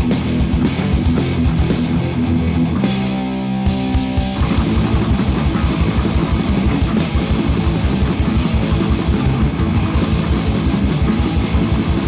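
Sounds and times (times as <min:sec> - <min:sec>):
heavy metal band playing: 0:00.0 - 0:12.0.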